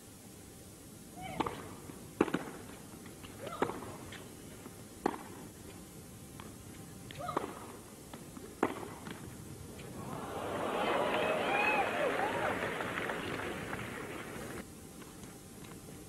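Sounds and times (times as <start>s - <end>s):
tennis ball struck by racquets: 2.2s - 2.8s, 5.0s - 5.4s, 7.4s - 9.9s.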